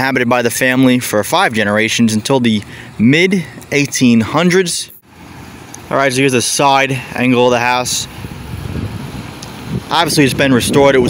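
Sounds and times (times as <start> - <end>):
wind buffeting microphone: 7.0 - 11.0.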